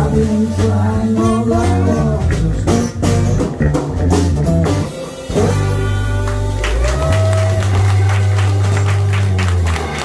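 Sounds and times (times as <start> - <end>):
bass guitar low note: 0.0 - 10.0
drums: 0.0 - 10.0
electric guitar note bending: 0.0 - 10.0.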